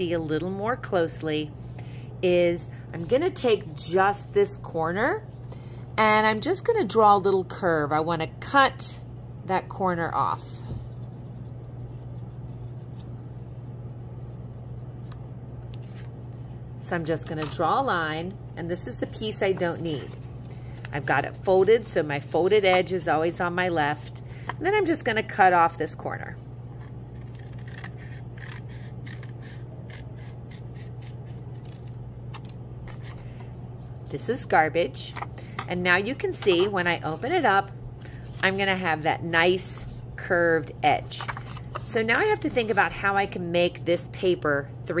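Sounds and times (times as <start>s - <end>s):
low hum: 0.0s - 45.0s
scissors snipping paper: 26.8s - 33.1s.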